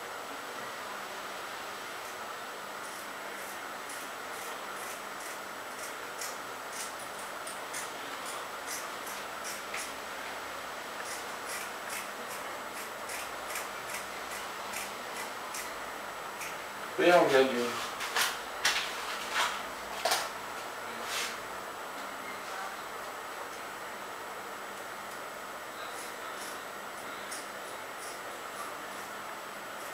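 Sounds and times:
scissors snipping: 13.1s - 15.7s.

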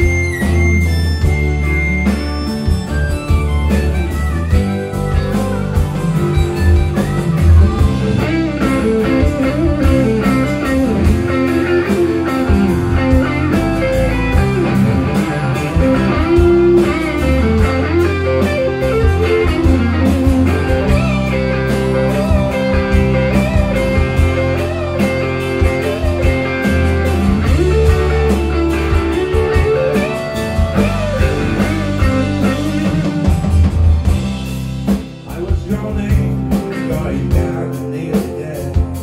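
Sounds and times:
bass drums and keyboard: 0.0s - 39.0s
electric guitar lead with bent notes: 0.0s - 39.0s.

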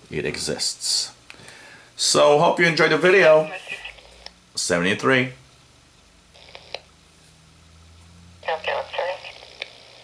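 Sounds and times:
tinny radio voice: 3.2s - 4.0s, 8.4s - 9.4s
radio burst: 3.2s - 4.1s, 8.4s - 9.4s.

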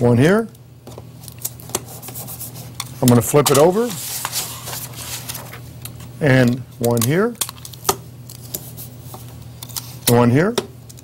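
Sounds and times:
tape rubbing rustle: 1.4s - 5.7s.

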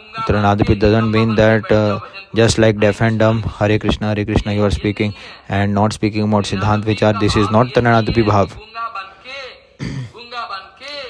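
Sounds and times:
man clearing throat: 9.8s - 10.2s.

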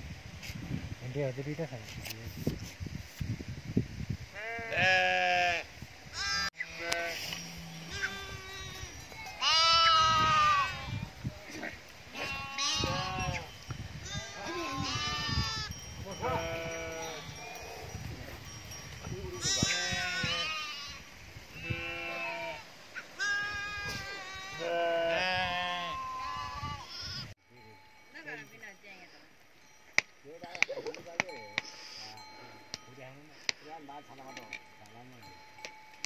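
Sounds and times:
sheep and goats bleating: 4.3s - 18.3s, 19.2s - 27.3s.

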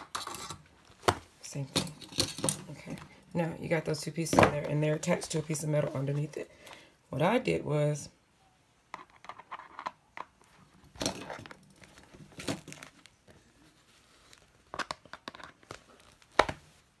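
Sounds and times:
rustling of planner cover: 10.5s - 16.9s.

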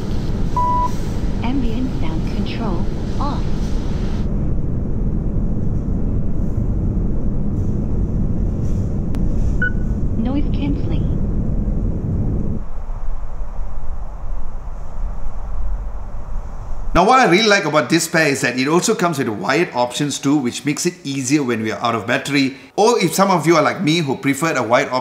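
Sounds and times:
steady low rumble: 0.0s - 17.8s.

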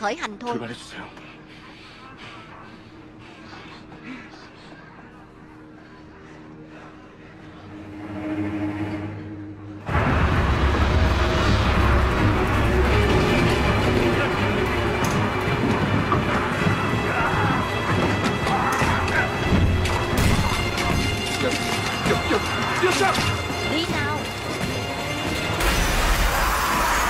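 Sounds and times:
dramatic film score: 0.0s - 27.0s
people shouting: 13.4s - 23.6s, 25.9s - 27.0s.

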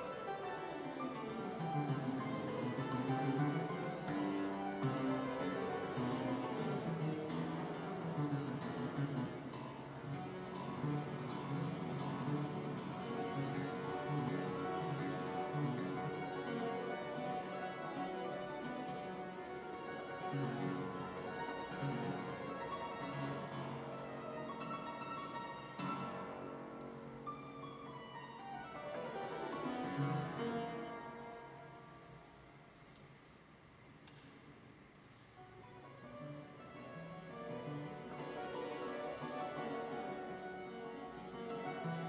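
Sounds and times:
clavichord classical piece: 0.0s - 33.1s, 35.3s - 42.0s.

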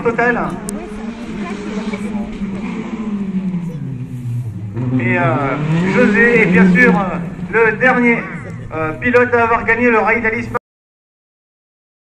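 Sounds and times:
distant rally car engine: 0.0s - 10.6s
noisy background: 0.0s - 10.6s.

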